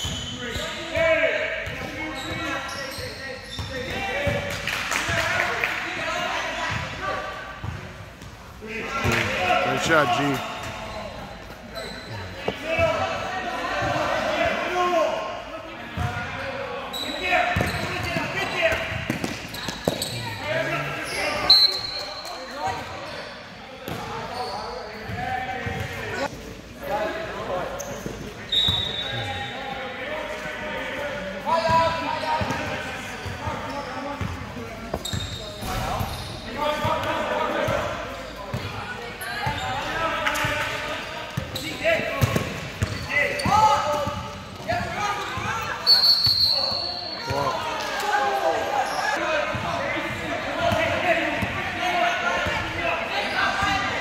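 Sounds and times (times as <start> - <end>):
voices in gym: 0.0 - 54.0
basketball bouncing on court: 42.2 - 44.3.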